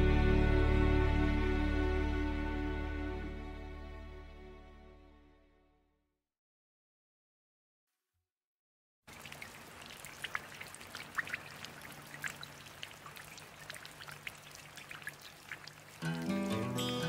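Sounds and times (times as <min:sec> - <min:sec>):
music with sustained chords: 0:00.0 - 0:05.6, 0:16.0 - 0:17.0
water drips: 0:09.1 - 0:17.0.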